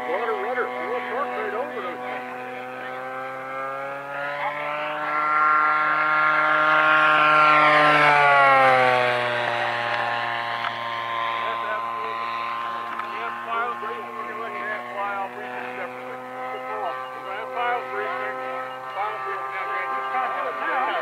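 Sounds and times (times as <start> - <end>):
model airplane propeller engine droning: 0.0 - 21.0
voices: 0.0 - 21.0.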